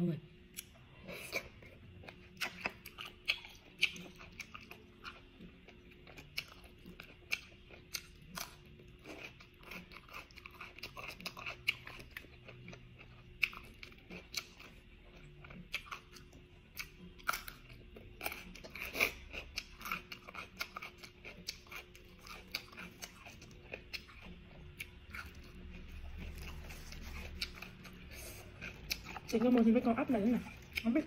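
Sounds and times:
person chewing crunchy food: 0.5 - 31.0.

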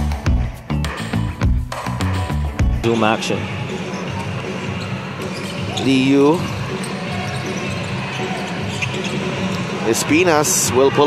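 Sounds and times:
arena crowd noise: 2.7 - 11.0
sneaker squeak: 2.9 - 9.8.

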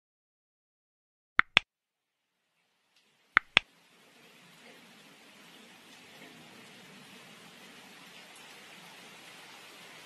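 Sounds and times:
faint steady hiss: 2.2 - 10.0.

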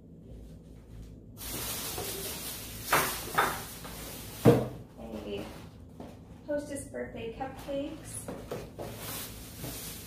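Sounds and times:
plastic bag rustling: 1.4 - 5.8, 7.6 - 10.0.

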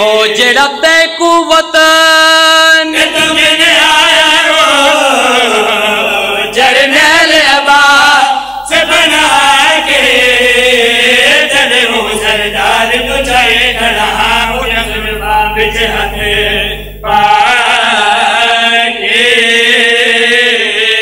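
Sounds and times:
men chanting through microphones: 0.0 - 21.0.

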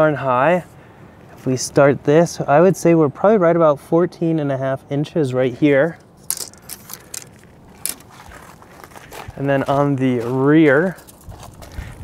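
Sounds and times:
footsteps on gravel: 6.3 - 12.0.

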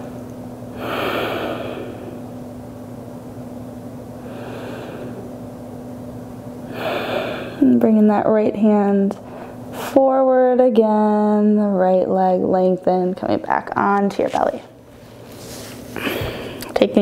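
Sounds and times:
woman breathing deeply: 0.0 - 2.3, 4.2 - 5.4, 6.6 - 7.8, 9.2 - 9.9, 15.9 - 16.7.

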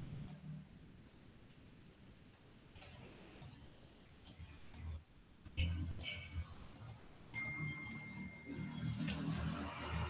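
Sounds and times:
faint room noise: 0.0 - 10.0
mouse clicks: 9.0 - 9.5.

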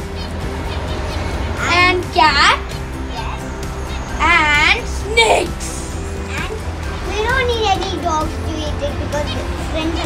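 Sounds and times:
child speaking: 4.2 - 9.3.

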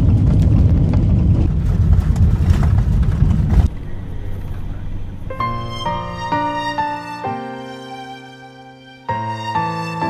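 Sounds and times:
vehicle low rumble: 0.0 - 7.2
faint hum: 3.5 - 7.0.

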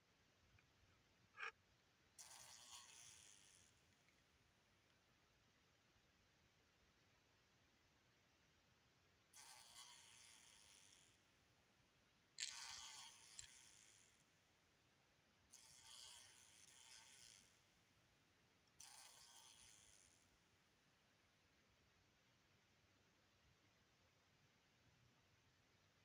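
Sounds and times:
fly buzzing wings: 2.2 - 3.7, 9.4 - 11.2, 12.4 - 14.0, 15.6 - 17.5, 18.8 - 20.2.

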